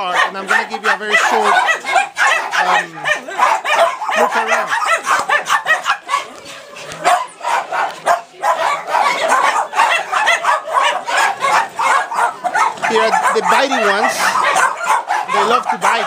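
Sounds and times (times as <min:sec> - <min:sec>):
small dogs barking: 0:00.0 - 0:16.0.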